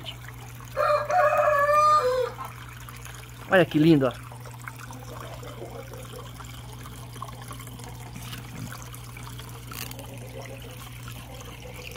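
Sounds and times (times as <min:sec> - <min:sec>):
low pump hum: 0:00.0 - 0:11.9
water trickling and splashing: 0:00.0 - 0:11.9.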